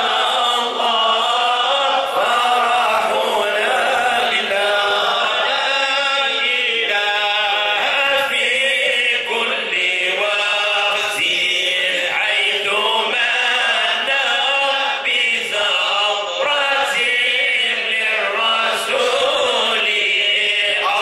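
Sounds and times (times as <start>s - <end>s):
men chanting together: 0.0s - 21.0s.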